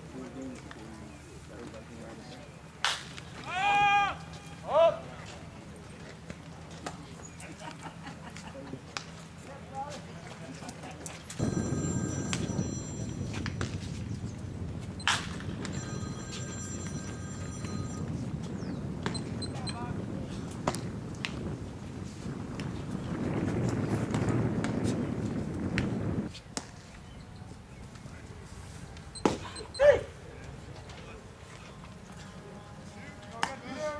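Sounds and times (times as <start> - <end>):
distant voices: 0.0 - 24.5
bat crack: 2.8 - 3.2
low rumble: 11.4 - 24.2.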